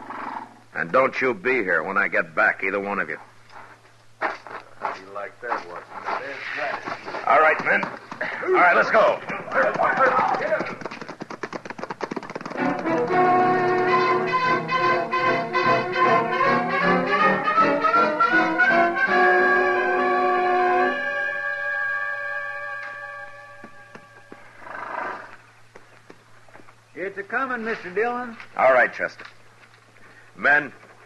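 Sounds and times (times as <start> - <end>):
galloping horse hoofbeats: 4.2 - 14.9, 23.6 - 26.6
brass orchestral music: 12.6 - 23.9.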